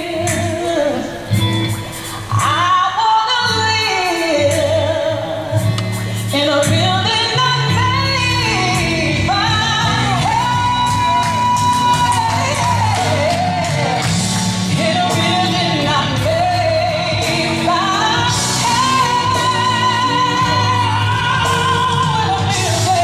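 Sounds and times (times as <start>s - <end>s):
woman singing gospel: 0.0s - 1.4s, 2.3s - 23.0s
keyboard and percussion accompaniment: 0.0s - 23.0s.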